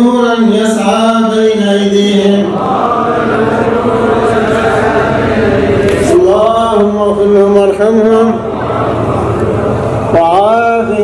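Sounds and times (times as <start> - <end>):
men chanting melodically: 0.0 - 9.1
many voices reciting: 0.0 - 11.0.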